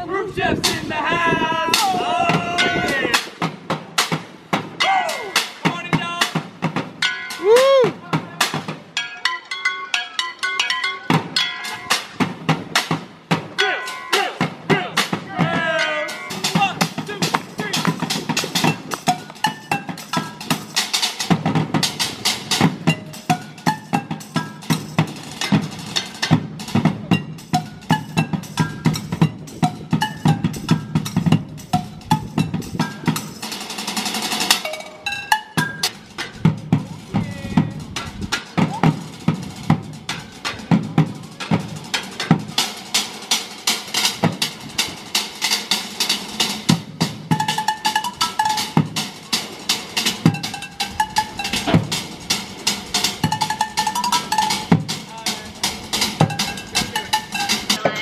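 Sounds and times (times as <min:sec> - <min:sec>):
sticks drumming on metal pots: 0:53.1 - 0:58.0.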